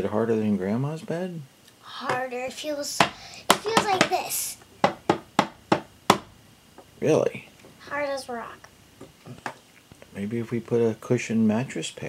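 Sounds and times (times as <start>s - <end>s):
knocks on a hard surface: 3.0s - 4.2s, 4.8s - 6.3s.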